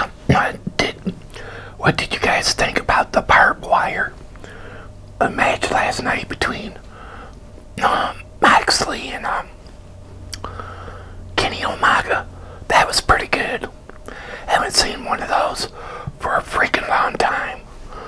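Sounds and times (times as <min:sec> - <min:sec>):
man whispering: 0:00.0 - 0:07.0, 0:07.8 - 0:09.6, 0:11.4 - 0:13.8, 0:14.4 - 0:18.0
faint low hum: 0:00.0 - 0:18.0.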